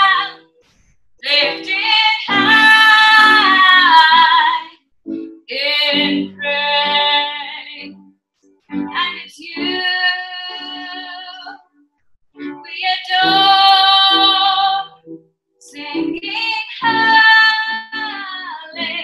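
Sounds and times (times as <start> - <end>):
woman singing: 0.0 - 0.4, 1.2 - 4.8, 5.5 - 8.0, 8.9 - 11.6, 12.6 - 15.0, 15.6 - 19.0
singer breathing: 0.6 - 1.2.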